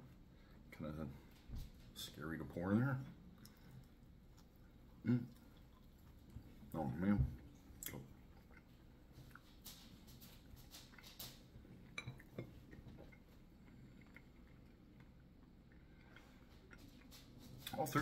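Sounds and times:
quiet chewing: 0:03.0 - 0:18.0.

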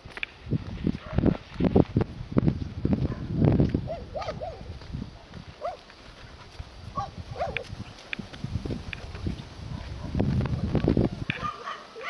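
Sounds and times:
dog yelping: 0:11.4 - 0:12.0.

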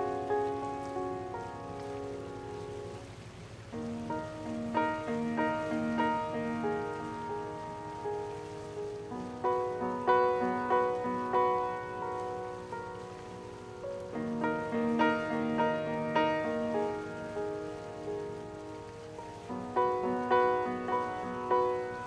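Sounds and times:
slow mellow piano piece: 0:00.0 - 0:22.0.

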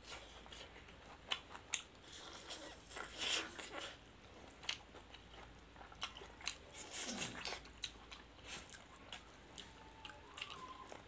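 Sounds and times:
chewing and biting food: 0:00.0 - 0:11.0.

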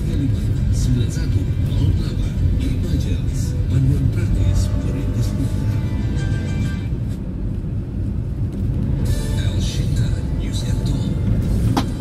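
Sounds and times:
radio music: 0:00.0 - 0:07.0, 0:08.9 - 0:12.0
car road and engine rumble: 0:00.0 - 0:12.0.

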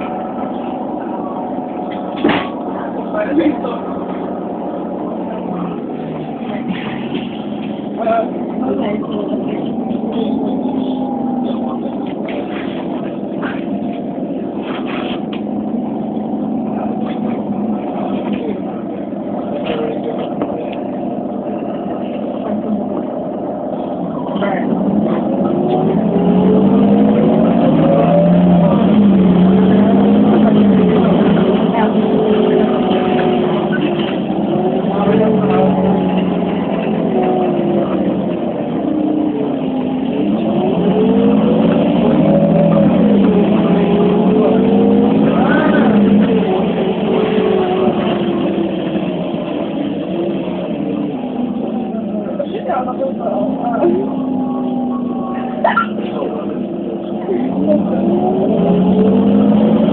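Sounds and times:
bus engine accelerating: 0:00.0 - 0:59.9.

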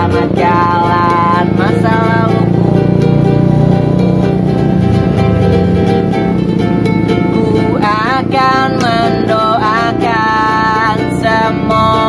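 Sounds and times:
man singing: 0:00.0 - 0:02.9
ukulele strumming: 0:00.0 - 0:12.0
low drone: 0:01.4 - 0:09.2.

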